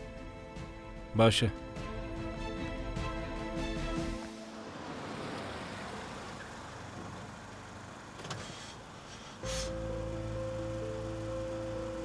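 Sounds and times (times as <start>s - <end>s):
car driving up: 4.0s - 12.0s.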